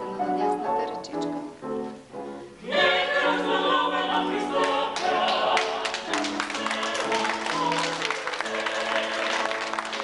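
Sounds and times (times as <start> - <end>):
choir singing: 2.6 - 10.0.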